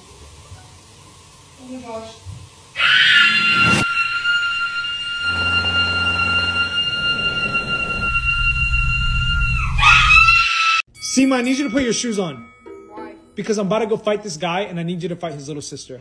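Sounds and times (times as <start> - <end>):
long high-pitched scream: 2.8 - 10.9
low rumble: 4.5 - 10.1.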